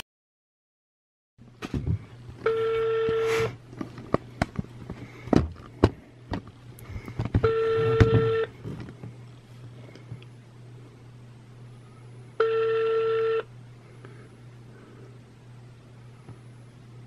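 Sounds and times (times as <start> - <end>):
low hum: 1.4 - 17.0
phone ringback beeps: 2.5 - 3.3, 7.4 - 8.5, 12.4 - 13.5.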